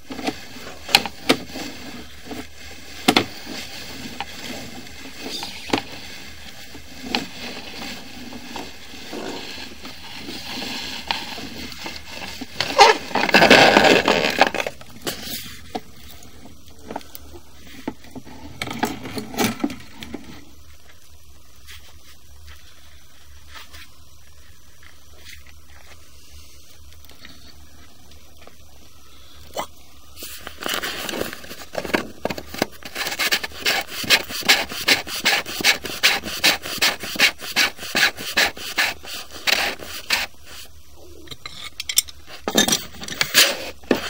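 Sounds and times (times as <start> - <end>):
plastic threads rasping: 0.0 - 20.3, 30.6 - 40.4
camera cable scraping against pipe: 0.1 - 15.8.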